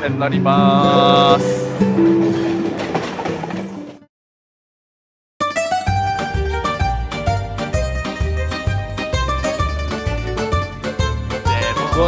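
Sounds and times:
train wheels clattering on rails: 1.7 - 4.0.

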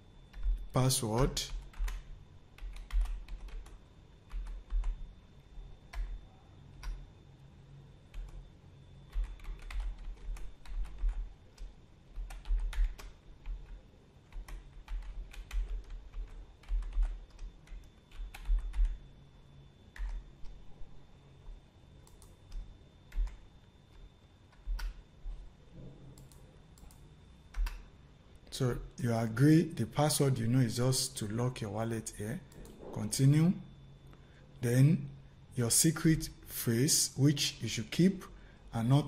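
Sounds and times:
keyboard typing: 0.3 - 7.0, 8.1 - 19.1, 19.9 - 20.6, 22.0 - 25.5, 26.2 - 27.9.

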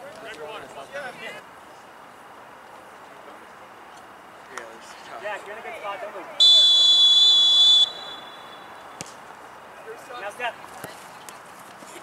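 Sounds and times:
referee's whistle blast: 6.4 - 8.8.

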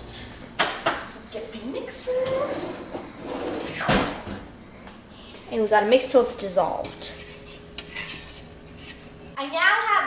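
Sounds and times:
child speaking: 1.1 - 2.7, 5.5 - 7.1, 9.4 - 10.0
whisk stirring in metal bowl: 6.7 - 9.3.

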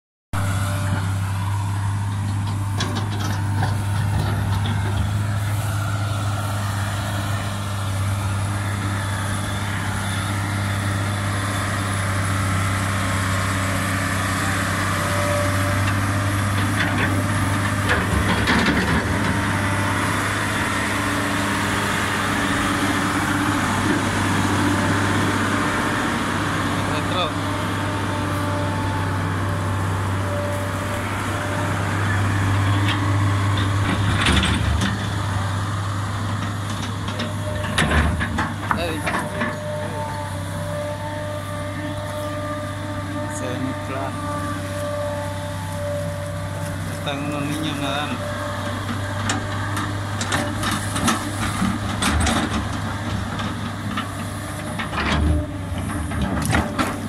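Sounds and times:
excavator diesel engine running: 0.3 - 57.0.

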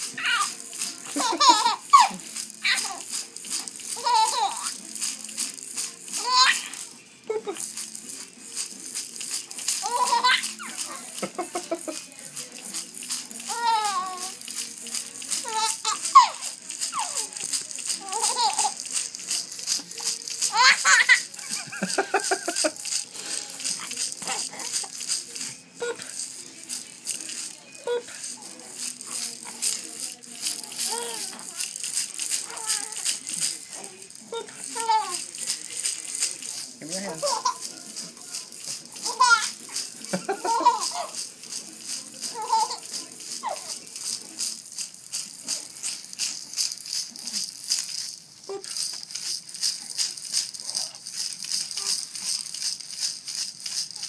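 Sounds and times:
baby toy rattling: 0.0 - 54.0.

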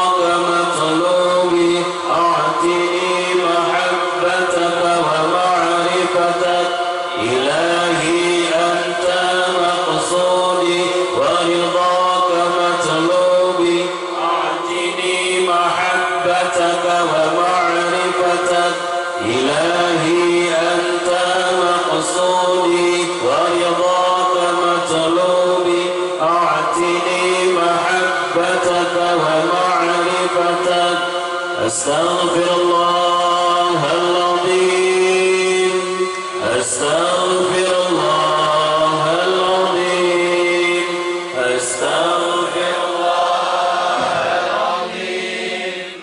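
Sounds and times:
man leading chant on microphone: 0.0 - 46.0
men chanting together: 41.4 - 46.0.

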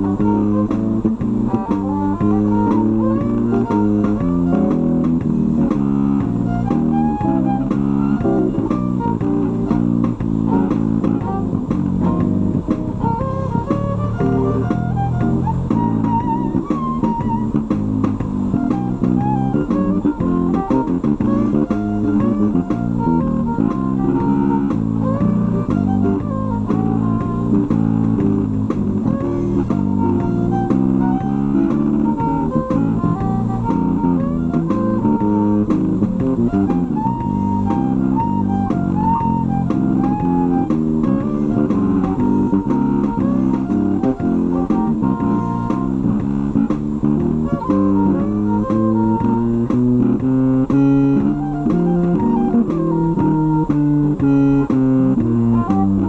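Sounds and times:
guitar and bass accompaniment: 0.0 - 56.0
violin playing blues melody: 0.0 - 56.0.

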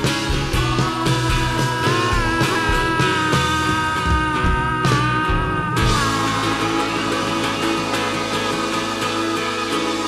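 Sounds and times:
live rock band through loudspeakers: 0.0 - 10.0.

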